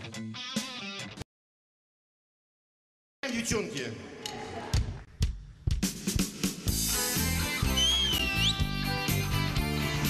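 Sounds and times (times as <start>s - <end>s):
rock band playing: 0.0s - 1.2s, 6.7s - 10.0s
drum fill: 4.8s - 7.0s.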